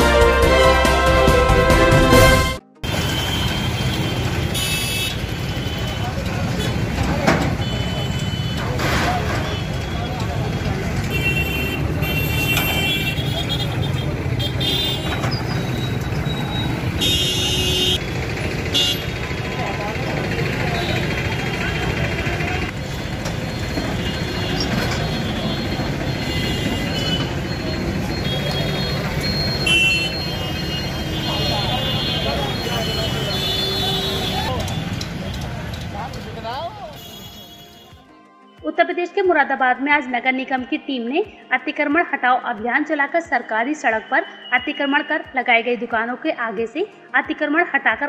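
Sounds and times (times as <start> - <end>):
vehicle horns: 0.0 - 38.1
people talking: 5.7 - 11.2, 19.3 - 22.8, 31.1 - 37.1, 38.6 - 48.0
diesel tractor engine running: 12.8 - 31.3.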